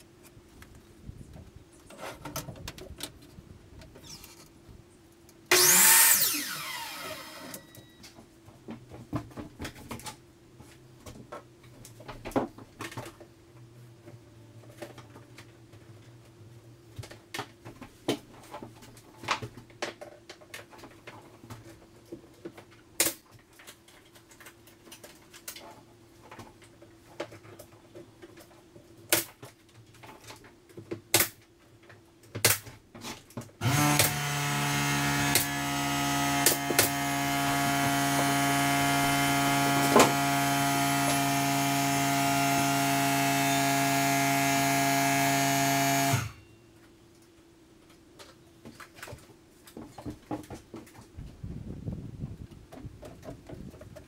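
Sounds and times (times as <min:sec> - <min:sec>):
air compressor motor running: 0:05.5 - 0:07.7, 0:33.6 - 0:46.4.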